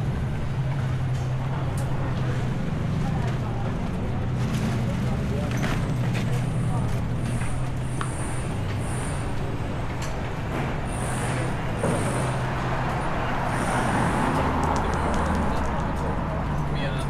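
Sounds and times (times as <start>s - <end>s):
street traffic: 0.0s - 17.0s
vehicle engine humming: 0.0s - 17.0s
people talking: 0.6s - 9.8s, 13.4s - 17.0s.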